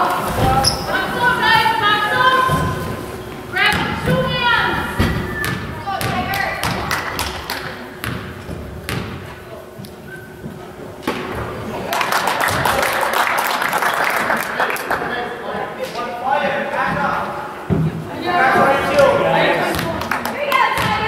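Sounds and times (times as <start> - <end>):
crowd voices: 0.0 - 21.0
basketball bouncing on wooden floor: 5.0 - 6.9, 8.0 - 9.3, 20.8 - 21.0
crowd cheering: 11.6 - 15.5, 18.1 - 21.0.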